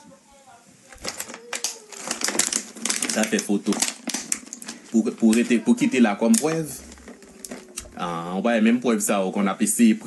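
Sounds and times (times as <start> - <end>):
person speaking: 0.0 - 10.0
rapid crackling clicks: 0.9 - 8.0.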